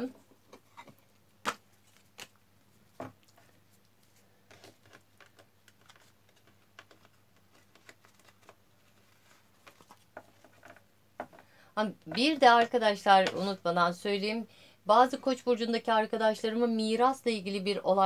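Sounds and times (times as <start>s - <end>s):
cards shuffling and flicking: 4.0s - 10.7s.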